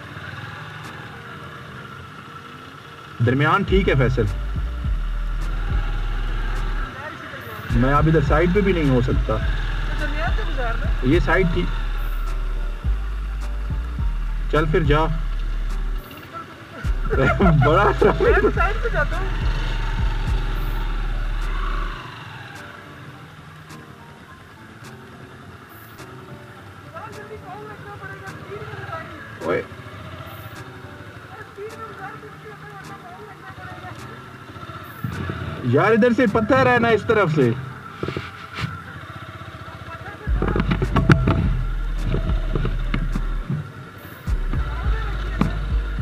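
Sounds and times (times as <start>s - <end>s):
motorcycle engine running: 0.0s - 25.8s, 26.4s - 46.0s
man talking: 3.2s - 4.4s, 7.6s - 9.5s, 11.0s - 11.7s, 14.5s - 15.2s, 16.8s - 19.0s, 35.6s - 37.7s.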